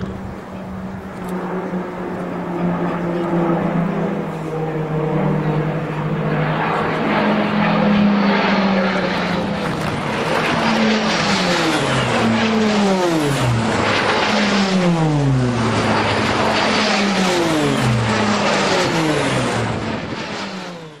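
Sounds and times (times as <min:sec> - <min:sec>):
aircraft fly-bys: 0:00.0 - 0:21.0
propeller aircraft flying overhead: 0:00.0 - 0:21.0.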